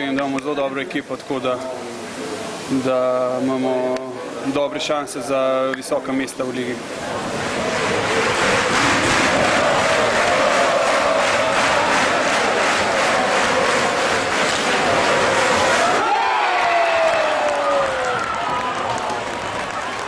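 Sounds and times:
crowd cheering and chanting: 0:06.8 - 0:20.0
rhythmic beat: 0:07.3 - 0:15.8.

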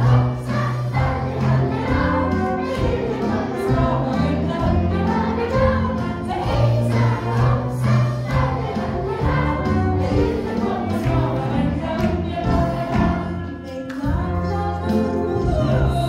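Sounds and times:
small live band playing: 0:00.0 - 0:16.0
voices singing: 0:00.0 - 0:16.0.

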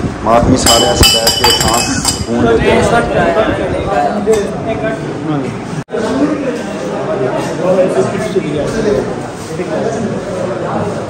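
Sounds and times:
drinking glasses clinking: 0:00.6 - 0:02.3.

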